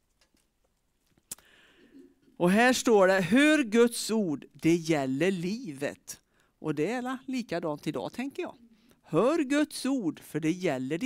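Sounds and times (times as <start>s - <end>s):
faint soft hiss: 0.0s - 3.4s, 4.0s - 9.3s.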